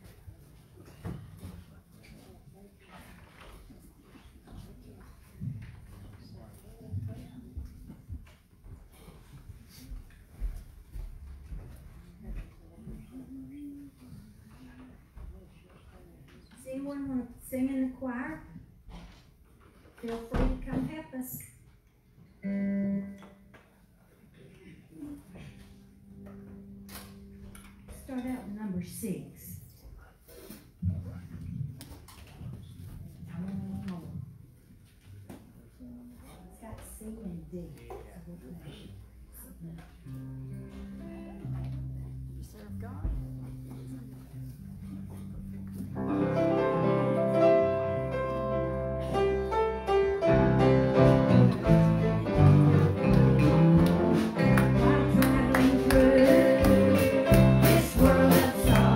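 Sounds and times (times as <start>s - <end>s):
acoustic guitars: 24.9s - 29.0s, 39.3s - 58.9s
grand piano: 43.2s - 58.9s.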